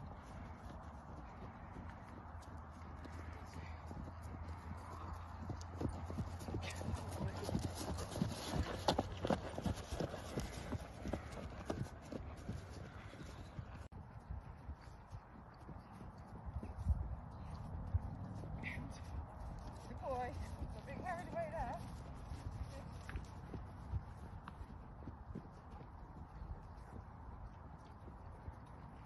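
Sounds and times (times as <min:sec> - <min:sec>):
horse hoofbeats on grass: 0:00.0 - 0:29.0.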